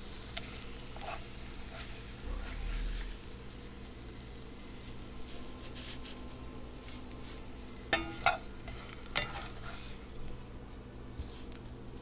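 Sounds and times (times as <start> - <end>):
bacon fat sizzling in a pan: 0.0 - 12.0.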